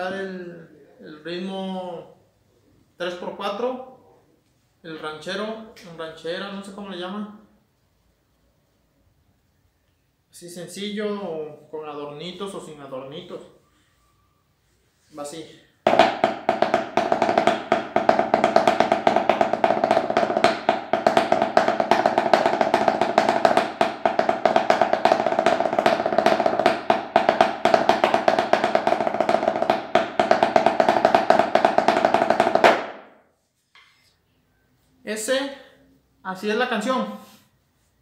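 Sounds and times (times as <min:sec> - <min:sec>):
muffled snare drum rhythm: 0:15.9 - 0:33.1.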